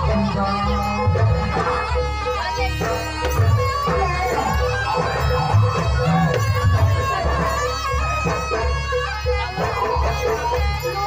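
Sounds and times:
drums: 0.0 - 11.0
shrill reedy shawm melody: 0.0 - 11.0.

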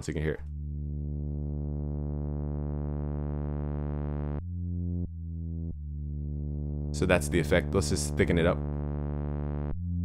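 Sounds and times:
synthesizer bass with opening filter: 0.0 - 10.0.

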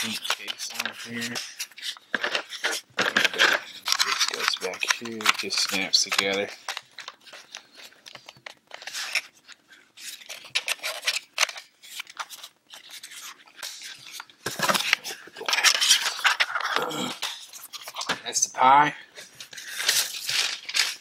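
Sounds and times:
plastic case clicks and scrapes: 0.0 - 9.3.

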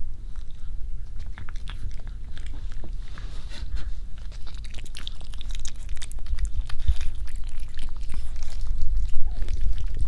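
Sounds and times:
cat chewing food: 0.2 - 10.0.

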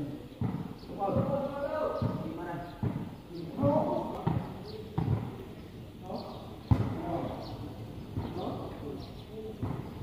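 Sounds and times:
ball thuds: 3.6 - 5.4, 6.7 - 7.2, 9.6 - 9.9.

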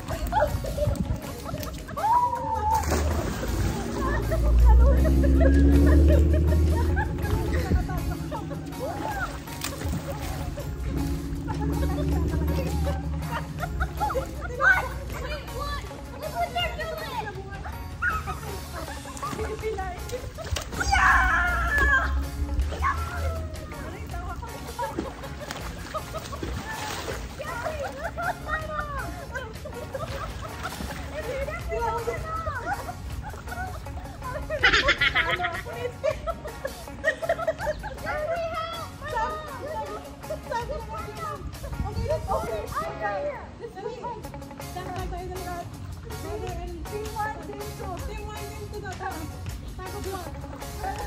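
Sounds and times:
children calling and shouting: 0.0 - 51.0
light background music: 0.0 - 51.0
loud high drawn-out shout: 20.8 - 23.4.

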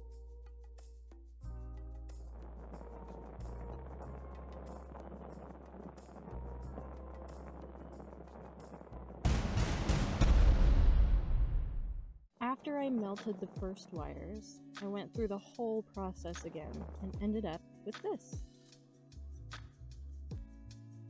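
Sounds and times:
background music: 0.0 - 11.7, 12.3 - 21.0
loud explosion boom: 9.2 - 12.2.

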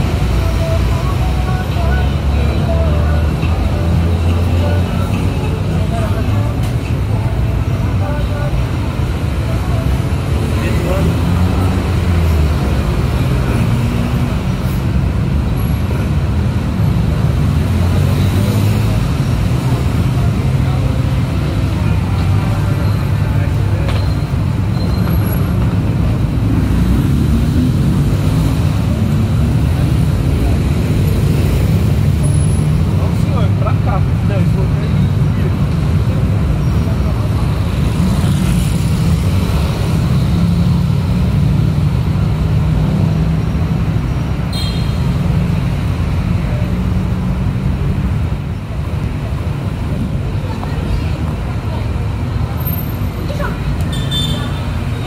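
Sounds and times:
passers-by talking: 0.0 - 15.2, 15.9 - 55.0
heavy road traffic rumble: 0.0 - 55.0.

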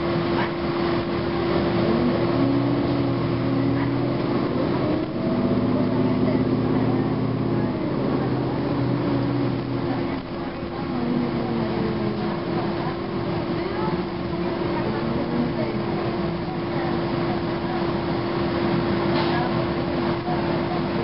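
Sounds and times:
bus diesel engine humming: 0.0 - 21.0
steady whine: 0.0 - 21.0.

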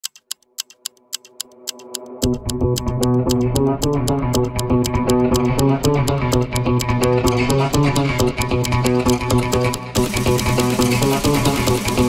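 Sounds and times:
high percussion clicks: 0.0 - 12.0.

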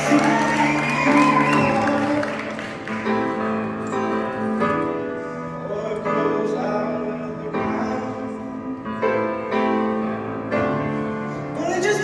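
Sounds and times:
upright piano chords: 0.0 - 12.0.

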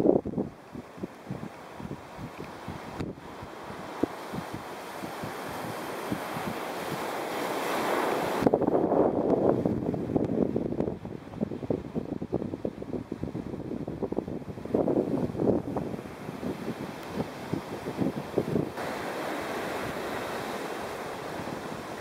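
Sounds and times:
surf washing on sandy beach: 0.0 - 22.0
wind buffeting the microphone: 0.0 - 22.0.

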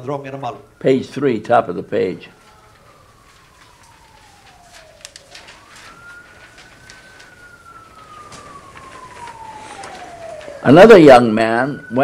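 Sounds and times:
faint siren wailing: 0.0 - 12.0.

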